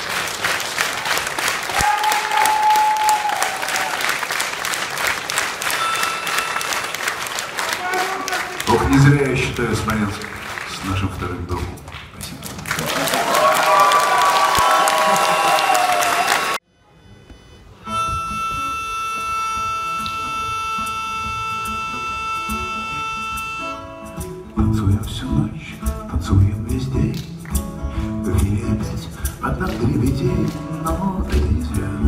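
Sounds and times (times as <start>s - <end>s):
loud crowd noise: 0.0s - 17.0s
drums and bass: 24.1s - 32.0s.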